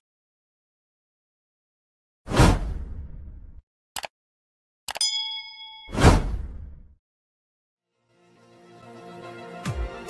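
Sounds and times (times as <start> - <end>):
notification bell ding: 5.0 - 6.0.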